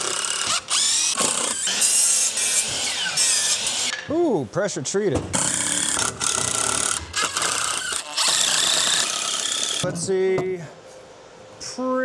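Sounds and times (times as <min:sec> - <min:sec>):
cordless drill driving screws: 0:00.0 - 0:03.9, 0:05.4 - 0:09.8
miter saw cutting wood: 0:00.0 - 0:03.9, 0:05.4 - 0:09.8.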